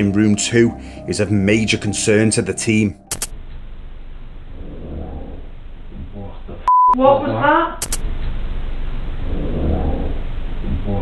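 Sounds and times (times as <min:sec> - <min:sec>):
man's voice: 0:00.0 - 0:03.1
low rough growl: 0:04.5 - 0:06.4, 0:09.2 - 0:11.0.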